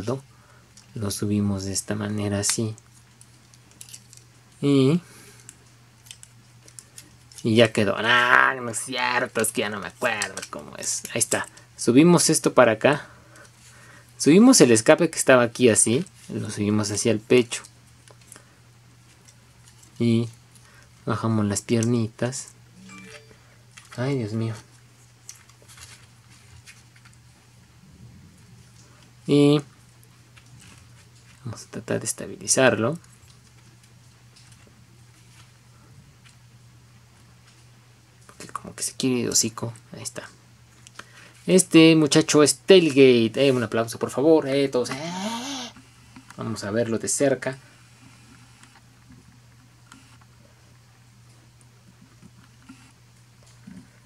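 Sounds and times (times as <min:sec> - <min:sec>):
low steady hum: 0:00.0 - 0:54.0.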